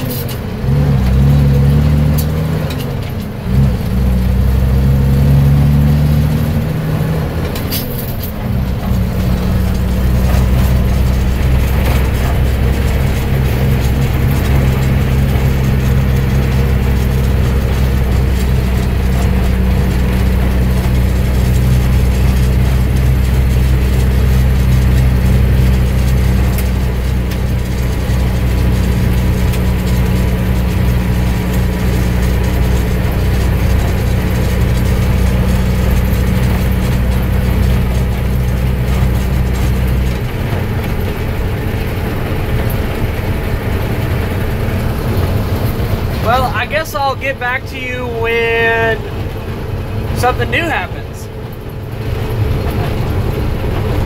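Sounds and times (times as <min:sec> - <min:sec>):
truck engine drone: 0:00.0 - 0:54.0
tyres on gravel road: 0:00.0 - 0:54.0.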